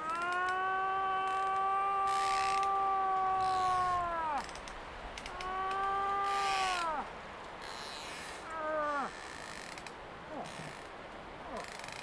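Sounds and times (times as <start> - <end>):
moose wailing call: 0.0 - 4.6, 5.3 - 9.4.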